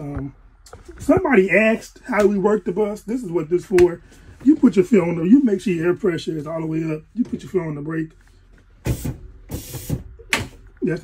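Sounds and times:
air brake hiss: 8.9s - 10.0s.

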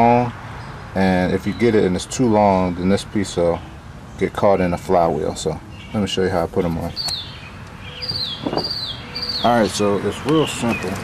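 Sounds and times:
bird whistling: 6.9s - 9.7s.

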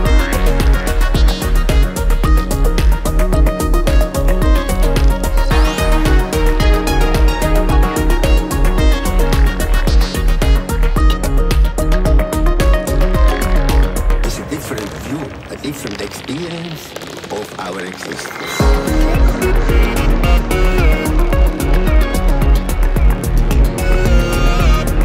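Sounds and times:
pounding kick drum: 0.0s - 14.0s, 18.6s - 25.0s
bass: 0.0s - 25.0s
synth layers: 0.0s - 25.0s.

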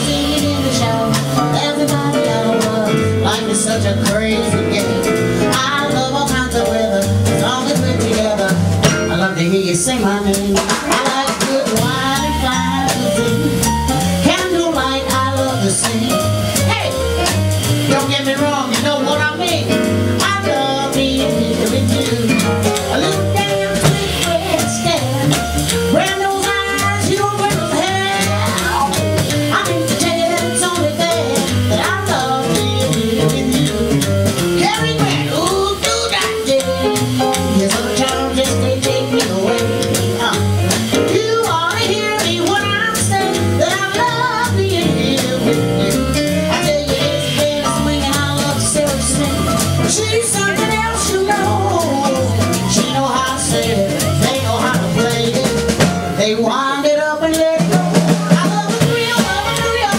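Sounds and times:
double bass: 0.0s - 59.9s
drum kit: 0.0s - 59.9s
piano: 0.0s - 59.9s
woman singing jazz: 0.0s - 59.9s.

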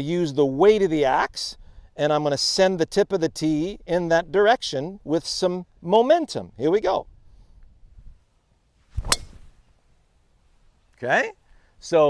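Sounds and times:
golf driver striking ball: 9.0s - 9.6s.

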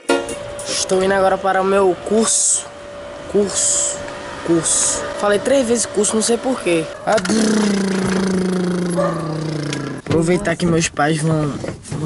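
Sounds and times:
man humming: 7.1s - 10.1s.

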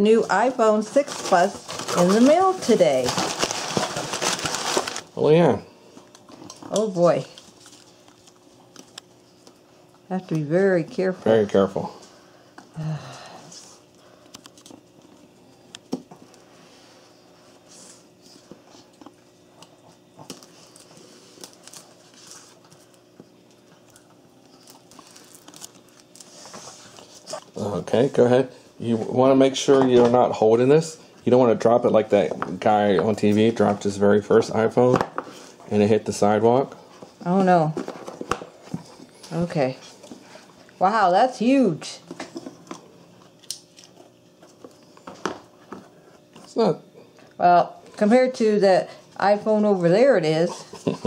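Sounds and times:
plastic film crinkling: 0.4s - 5.2s, 20.3s - 22.7s, 24.4s - 27.7s.

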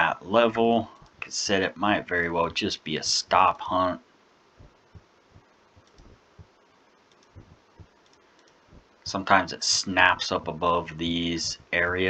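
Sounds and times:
computer mouse clicks: 5.8s - 6.2s, 7.1s - 8.6s.

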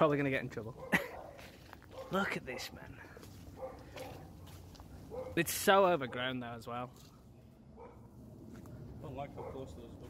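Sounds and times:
faint small dogs barking: 0.7s - 10.0s.

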